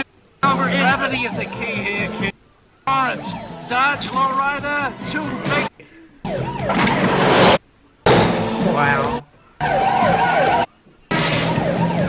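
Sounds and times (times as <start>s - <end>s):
police siren wailing: 0.5s - 2.3s, 2.9s - 7.6s, 8.5s - 12.0s
speeding car engine: 6.3s - 12.0s.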